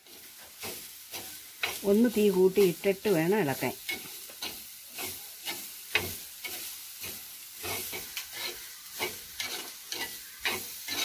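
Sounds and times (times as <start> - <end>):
light sizzle: 0.0 - 11.0
person speaking: 1.8 - 3.8
spoon scraping a pot: 3.7 - 11.0.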